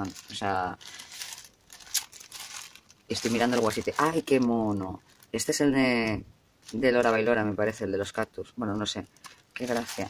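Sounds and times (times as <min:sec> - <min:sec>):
plastic wrapping crinkling: 0:00.0 - 0:10.0.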